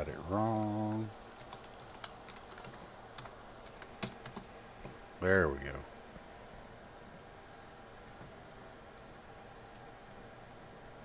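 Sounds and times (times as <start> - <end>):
keyboard keys clicking: 0.5 - 5.0.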